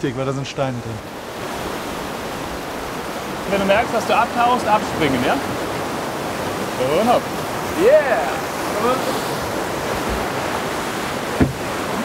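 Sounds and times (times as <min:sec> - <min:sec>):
rushing white water: 0:00.0 - 0:12.0.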